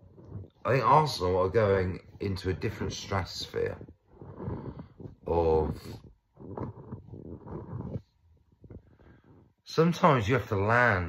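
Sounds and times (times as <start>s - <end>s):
man making a low rough sound: 0.0s - 9.6s.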